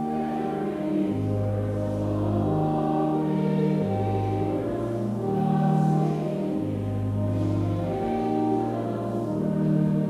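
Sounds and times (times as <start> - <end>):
pipe organ playing a hymn: 0.0 - 10.0.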